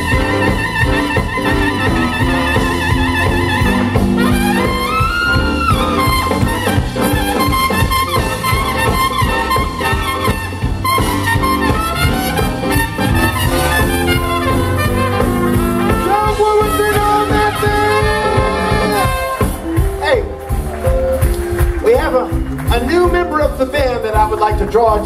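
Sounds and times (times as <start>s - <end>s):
saxophone: 0.0s - 21.7s
electric guitar: 0.0s - 22.7s
trumpet: 0.0s - 24.9s
steady drum beat: 0.0s - 25.0s.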